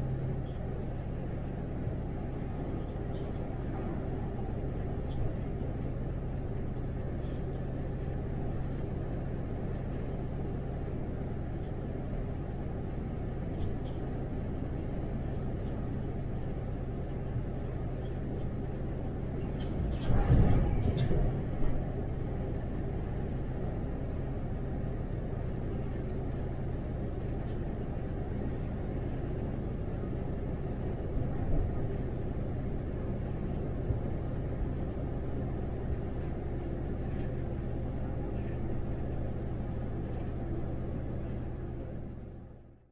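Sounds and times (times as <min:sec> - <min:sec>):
bus drivetrain hum: 0:00.0 - 0:42.9
road and tyre noise: 0:00.0 - 0:42.9.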